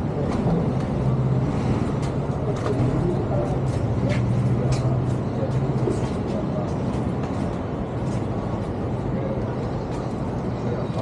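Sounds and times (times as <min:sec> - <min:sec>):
city street noise: 0:00.0 - 0:11.0.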